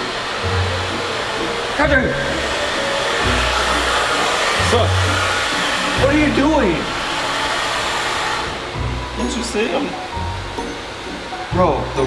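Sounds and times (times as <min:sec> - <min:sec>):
hair dryer running: 0:00.0 - 0:12.0.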